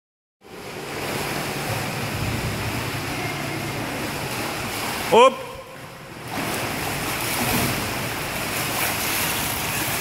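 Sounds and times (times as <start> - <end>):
water washing in swimming pool: 0.4 - 10.0.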